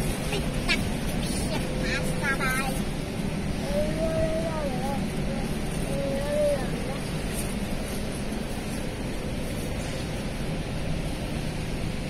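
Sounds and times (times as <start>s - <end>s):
child's voice: 0.2s - 2.9s, 3.5s - 7.4s.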